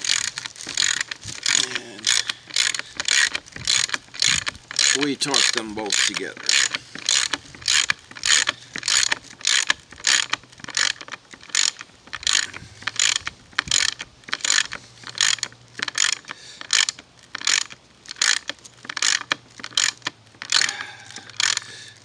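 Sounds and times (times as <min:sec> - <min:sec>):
ratchet wrench clicking: 0:00.0 - 0:21.8.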